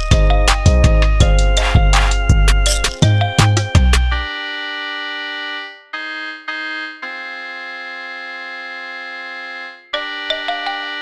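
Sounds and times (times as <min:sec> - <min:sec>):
bass and drums: 0:00.0 - 0:04.3.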